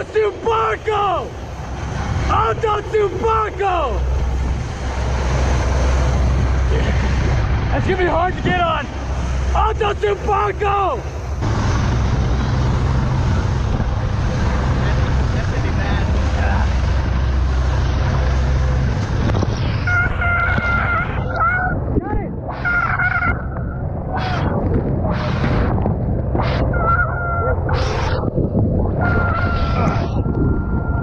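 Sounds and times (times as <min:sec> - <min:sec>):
rushing water: 0:00.0 - 0:30.2
boat engine rumble: 0:00.0 - 0:31.0
wind on microphone: 0:01.3 - 0:31.0
people shouting: 0:29.0 - 0:30.3.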